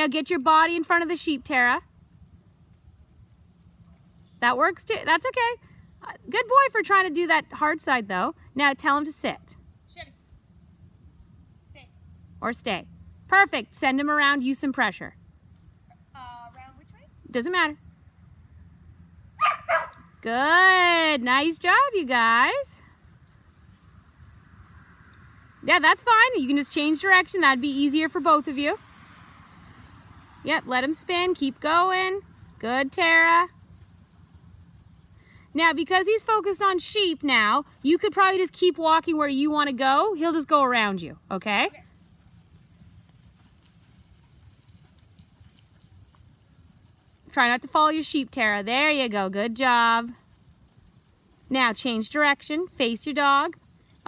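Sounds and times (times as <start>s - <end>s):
low steady rumble: 0.0s - 54.0s
dog barking: 19.4s - 20.0s.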